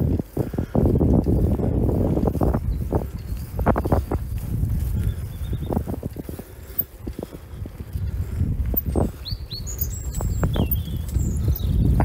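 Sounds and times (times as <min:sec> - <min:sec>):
footsteps on gravel: 0:00.0 - 0:12.0
small birds chirping: 0:00.0 - 0:12.0
wind rumble on microphone: 0:00.0 - 0:12.0.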